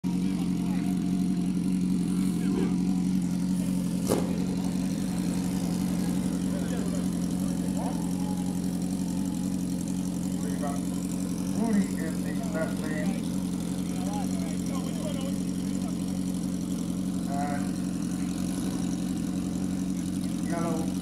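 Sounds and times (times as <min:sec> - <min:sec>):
motorcycle engine idling: 0:00.0 - 0:21.0.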